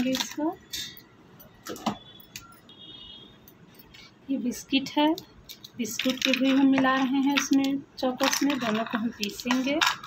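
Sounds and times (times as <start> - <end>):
kitchenware clicks and taps: 5.1 - 10.0.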